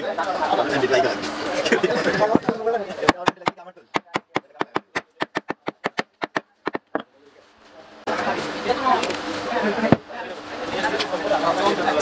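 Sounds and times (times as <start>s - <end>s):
sharp wooden taps on bat: 2.3s - 7.1s.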